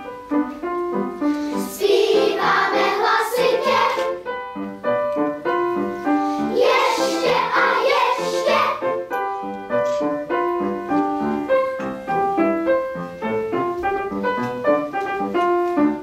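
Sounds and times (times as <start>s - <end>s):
piano accompaniment: 0.0s - 16.0s
children's choir singing: 1.5s - 4.3s, 6.4s - 9.2s.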